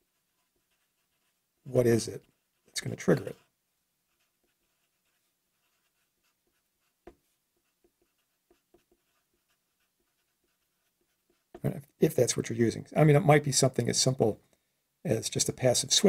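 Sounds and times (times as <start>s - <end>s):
marker pen writing on paper: 0.0s - 3.5s, 4.1s - 11.7s.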